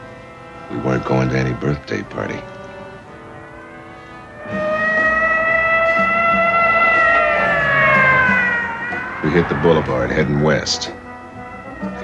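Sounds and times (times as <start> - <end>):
loud high held tone: 3.1 - 12.0.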